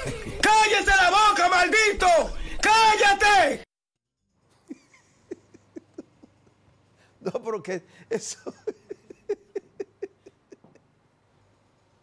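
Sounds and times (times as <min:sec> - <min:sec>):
man chuckling softly: 0:04.5 - 0:06.7, 0:08.2 - 0:11.0.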